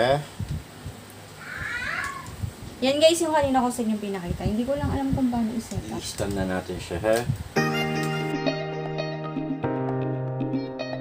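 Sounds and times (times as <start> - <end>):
short high-pitched cry: 1.4 - 2.4.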